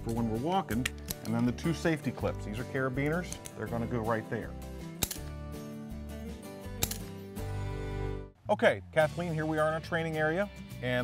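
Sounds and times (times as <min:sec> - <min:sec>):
metal carabiner clicking: 0:00.0 - 0:01.7, 0:03.0 - 0:03.7, 0:04.9 - 0:05.4, 0:06.8 - 0:07.2
background music: 0:00.0 - 0:11.0.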